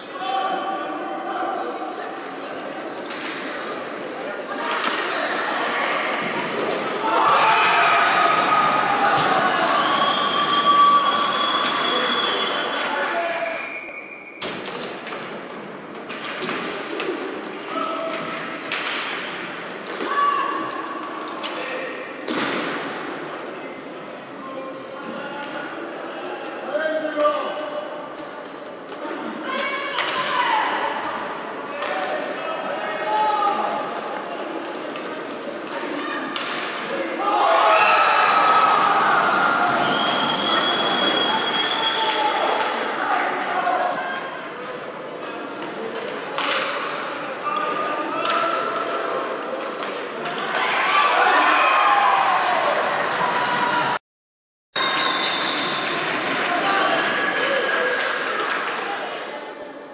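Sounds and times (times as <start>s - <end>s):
hockey sticks clacking: 4.5s - 5.5s, 14.4s - 21.6s, 33.0s - 37.0s, 39.2s - 50.8s
crowd cheering and shouting: 5.5s - 13.5s, 37.1s - 44.0s, 50.4s - 54.0s
people shouting: 7.0s - 11.2s, 37.2s - 39.9s.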